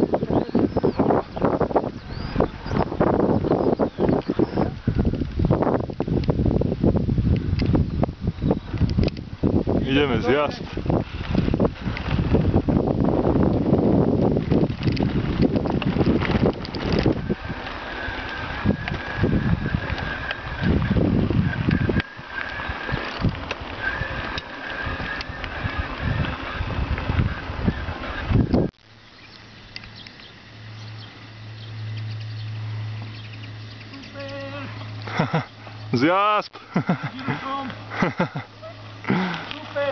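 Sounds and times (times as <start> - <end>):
mountain bike rattling on gravel: 0.0 - 39.9
wind buffeting microphone: 0.0 - 39.9
low steady hum: 10.8 - 39.9.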